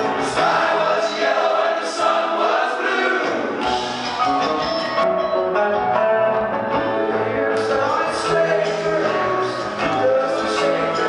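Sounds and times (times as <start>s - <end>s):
rock band music: 0.0s - 2.2s, 3.0s - 11.0s
voices singing together: 0.0s - 3.8s, 7.0s - 11.0s
bass and drums: 3.6s - 11.0s.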